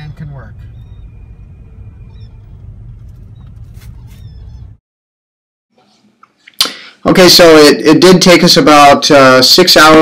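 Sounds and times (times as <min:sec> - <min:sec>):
car engine rumble: 0:00.0 - 0:04.8
surrounding traffic: 0:00.0 - 0:04.8
brief rustle: 0:03.0 - 0:04.3.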